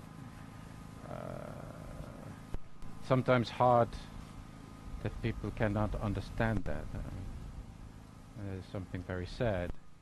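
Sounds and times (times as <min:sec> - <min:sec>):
man saying uhh: 0:01.0 - 0:02.3.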